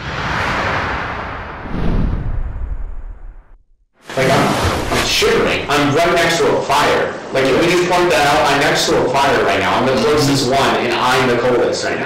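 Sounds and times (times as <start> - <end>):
deep boom-like surge: 0.0 - 3.8
noisy whoosh: 0.0 - 6.0.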